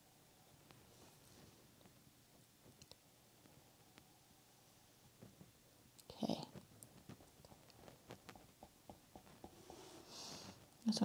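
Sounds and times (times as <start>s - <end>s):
faint small clicks: 2.7s - 3.0s.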